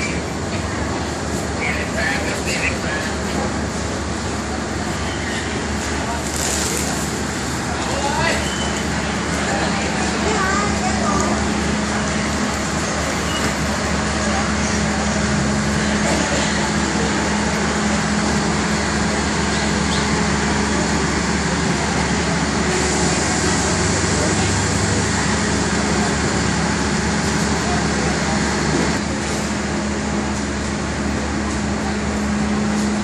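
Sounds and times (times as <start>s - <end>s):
diesel train engine idling: 0.0s - 33.0s
voices on platform: 0.0s - 33.0s.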